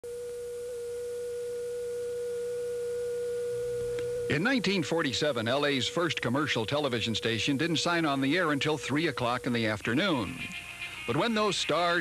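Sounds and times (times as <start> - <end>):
television test tone: 0.1 - 12.0.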